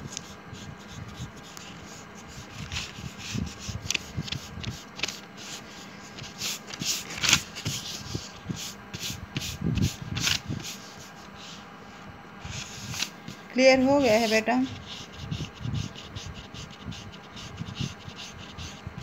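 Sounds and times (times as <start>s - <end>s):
eraser rubbing on paper: 0.2s - 11.6s, 12.5s - 19.0s.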